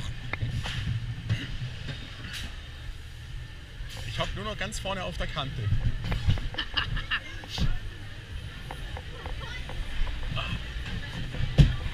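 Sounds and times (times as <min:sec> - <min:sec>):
roller coaster car rumbling: 0:00.0 - 0:11.9
indistinct crowd chatter: 0:05.6 - 0:11.9.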